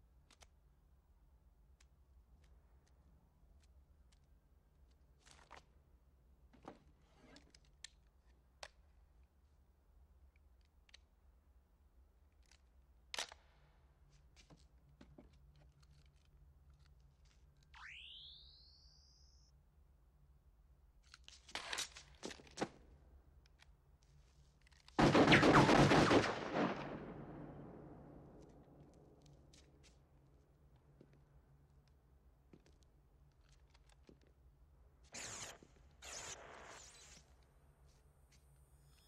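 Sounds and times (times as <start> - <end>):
rapid pistol gunfire echoing: 25.0 - 28.1.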